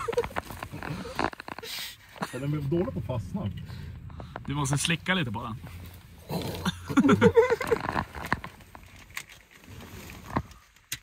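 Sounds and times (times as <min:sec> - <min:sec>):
men laughing loudly: 0:00.0 - 0:01.2, 0:06.6 - 0:08.2
small clicks and handling sounds: 0:07.6 - 0:11.0.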